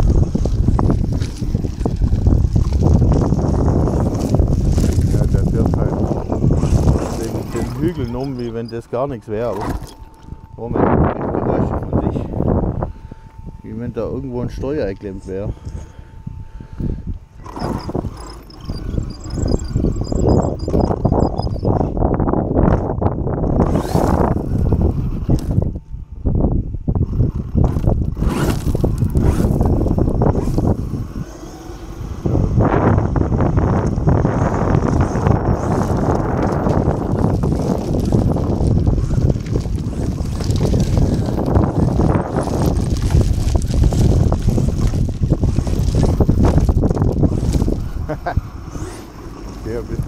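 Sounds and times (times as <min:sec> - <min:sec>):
tyres crunching over gravel: 0:00.0 - 0:12.7, 0:33.2 - 0:50.0.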